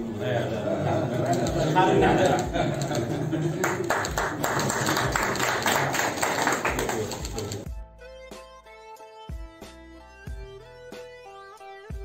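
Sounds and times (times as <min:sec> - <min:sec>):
people talking: 0:00.0 - 0:07.7
people clapping: 0:00.9 - 0:07.7.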